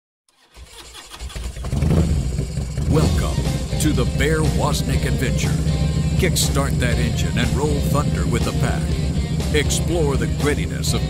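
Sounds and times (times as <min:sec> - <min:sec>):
motorcycle engine starting: 0:00.3 - 0:11.0
man's voice: 0:02.9 - 0:11.0.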